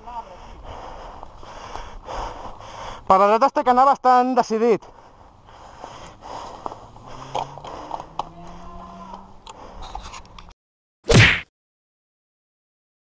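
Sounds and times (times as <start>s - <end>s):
mountain bike rattles and clicks: 5.8s - 10.5s.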